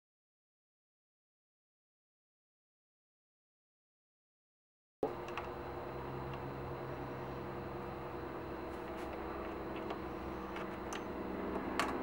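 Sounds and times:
workshop room hum: 5.0 - 12.0.

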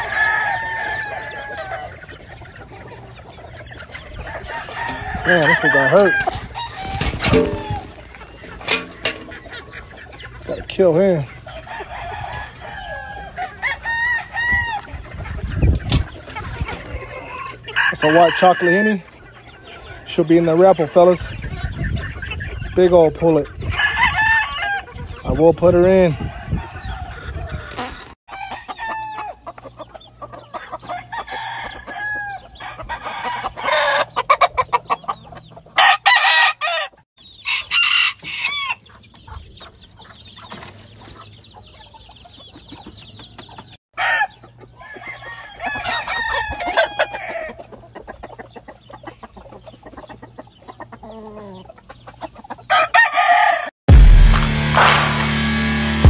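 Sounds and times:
rooster crowing: 0.0 - 2.0, 4.2 - 7.9, 35.8 - 38.8, 44.0 - 47.6, 52.7 - 53.7
roosters crowing: 0.0 - 39.1, 44.0 - 47.9, 50.7 - 53.8
chickens clucking and squawking: 0.0 - 53.7
loud music with heavy bass: 53.9 - 56.0.

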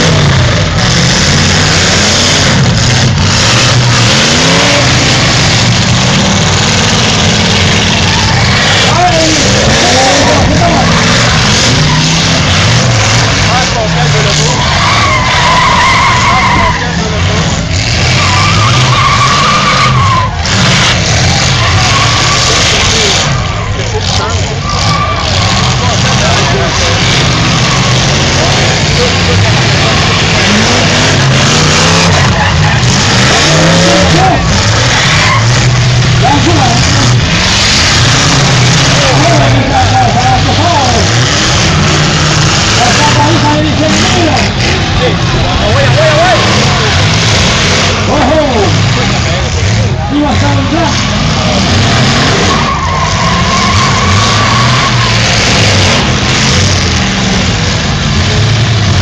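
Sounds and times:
car engines revving hard: 0.0 - 59.0
cars ramming: 0.0 - 59.0
crowd voices: 0.0 - 59.0
tyres squealing: 0.0 - 59.0.

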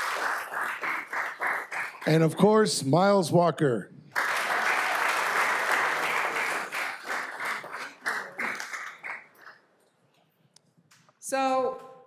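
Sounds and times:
audience applause: 0.0 - 2.4, 4.2 - 9.6.

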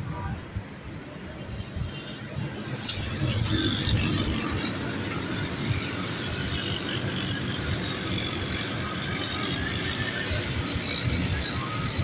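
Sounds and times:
city traffic hum: 0.0 - 12.0.

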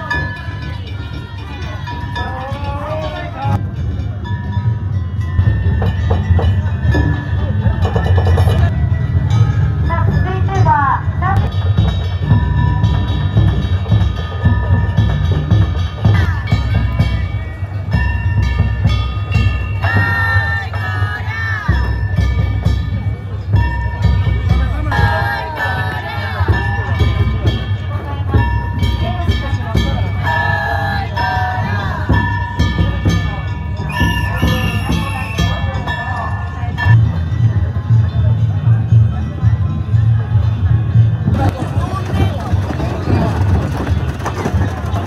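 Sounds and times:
hand gongs clanging: 0.0 - 37.5
festival drums: 0.0 - 45.0
people shouting: 19.8 - 21.9, 24.9 - 26.6, 30.3 - 32.2.

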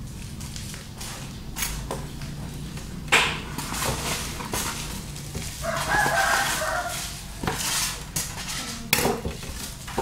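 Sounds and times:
bubble wrap rustling: 4.1 - 8.8.

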